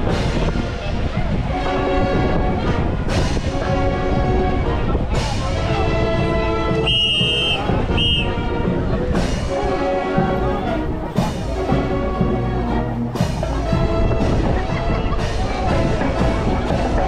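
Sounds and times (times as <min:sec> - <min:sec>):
marching band music: 0:00.0 - 0:17.0.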